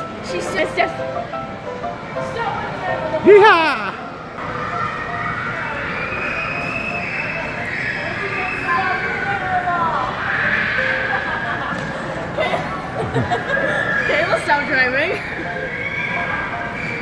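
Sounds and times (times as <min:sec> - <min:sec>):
shopping mall hubbub: 0:00.0 - 0:17.0
children chattering: 0:02.1 - 0:17.0.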